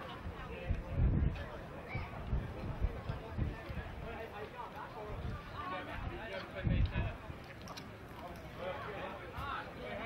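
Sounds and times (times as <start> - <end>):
people chatting: 0.0 - 10.0
low rumbles on microphone: 0.2 - 4.2.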